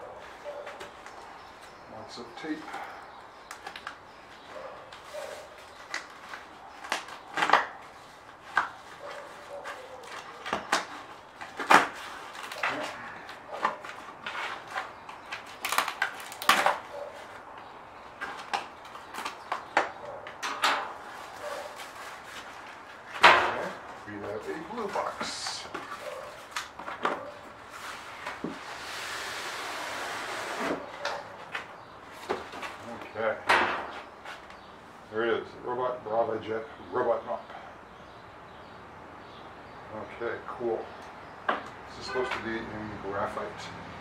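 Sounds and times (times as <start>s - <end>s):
cardboard scraping on cardboard: 27.7s - 31.0s.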